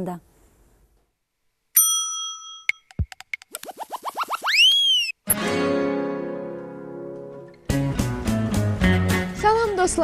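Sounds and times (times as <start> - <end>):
bell-like ding: 1.8 - 2.9
short rising whistles: 3.6 - 5.2.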